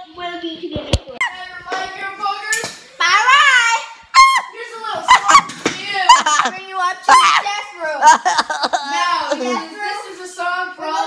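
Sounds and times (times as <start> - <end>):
child crying and yelling: 3.8 - 9.8.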